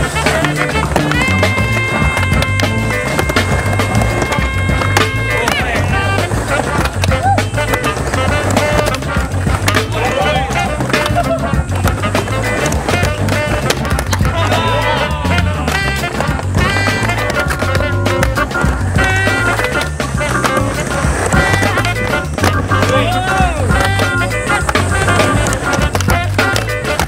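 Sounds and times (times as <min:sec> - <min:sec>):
background music: 0:00.0 - 0:27.0
skateboard wheels rolling and clacking: 0:00.0 - 0:27.0.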